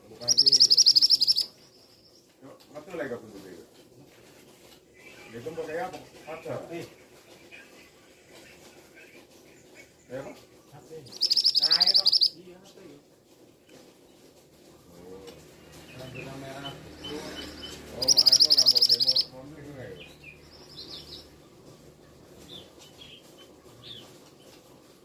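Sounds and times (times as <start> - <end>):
bird high-pitched call: 0.2 - 1.5, 11.1 - 12.4, 17.0 - 19.3.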